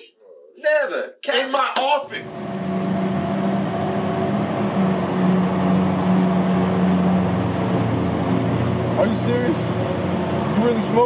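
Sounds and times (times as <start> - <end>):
car engine humming: 2.1 - 11.0.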